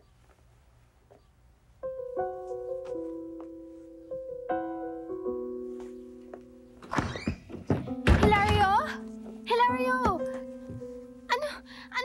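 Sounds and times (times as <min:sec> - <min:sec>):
soft piano notes: 0:01.1 - 0:12.0
wooden door forced open: 0:06.8 - 0:08.8.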